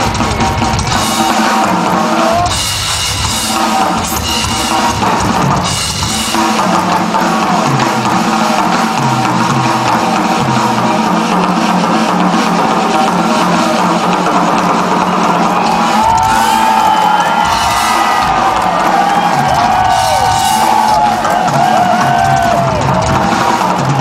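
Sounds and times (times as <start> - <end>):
crowd cheering and whooping: 0.0 - 5.7, 12.6 - 24.0
drum kit solo: 0.0 - 24.0.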